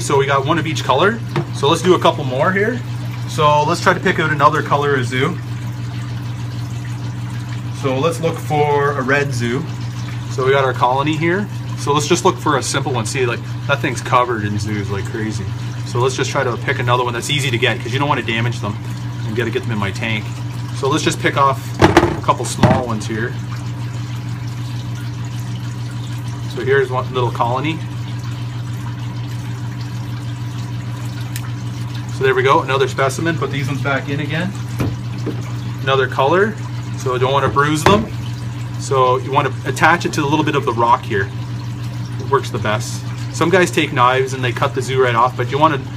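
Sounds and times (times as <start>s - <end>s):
speech: 0.0s - 5.4s, 7.8s - 9.7s, 10.3s - 21.6s, 22.2s - 23.4s, 26.5s - 27.9s, 32.2s - 34.6s, 35.8s - 38.1s, 38.8s - 41.3s, 42.2s - 45.9s
moving water: 0.0s - 45.9s
water pump humming: 0.0s - 45.9s.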